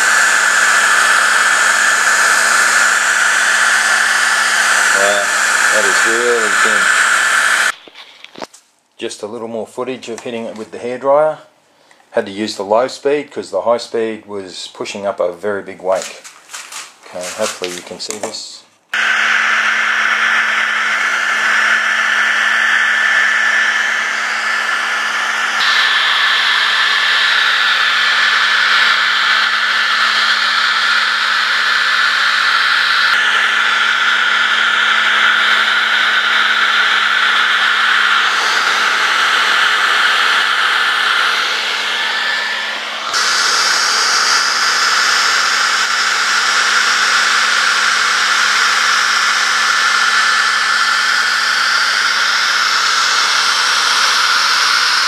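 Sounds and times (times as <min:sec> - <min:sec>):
hair dryer blowing air: 0:00.0 - 0:07.8, 0:15.9 - 0:18.3, 0:18.9 - 0:55.0.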